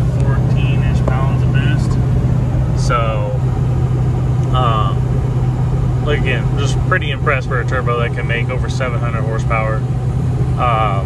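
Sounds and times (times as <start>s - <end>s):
diesel engine drone from inside cab: 0.0s - 11.0s
road noise: 0.0s - 11.0s
person speaking: 4.5s - 5.1s.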